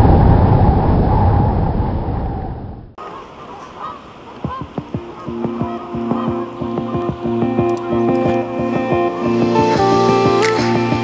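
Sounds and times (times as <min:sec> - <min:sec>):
geese honking: 0:03.0 - 0:10.5
music with held notes: 0:04.8 - 0:11.0.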